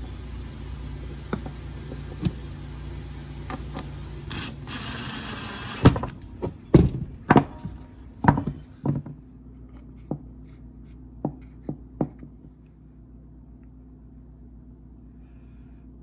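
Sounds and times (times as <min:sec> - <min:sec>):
cordless drill driving screw: 0:04.3 - 0:06.1
wooden knocks and thuds: 0:06.4 - 0:09.2.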